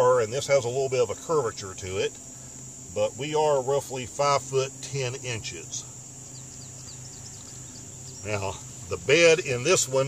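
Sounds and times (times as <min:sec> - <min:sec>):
insects droning: 0:00.0 - 0:10.0
low steady hum: 0:00.0 - 0:10.0.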